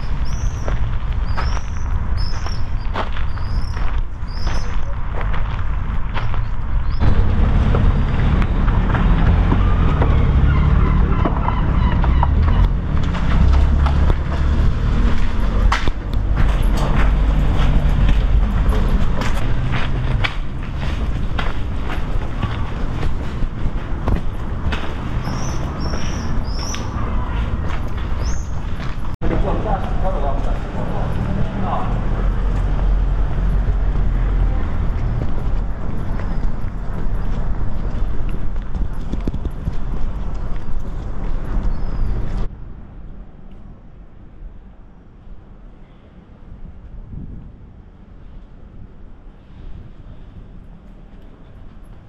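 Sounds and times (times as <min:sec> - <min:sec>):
bird chirping: 0:00.0 - 0:04.9, 0:25.1 - 0:28.8, 0:41.6 - 0:42.4
low street rumble: 0:00.0 - 0:52.0.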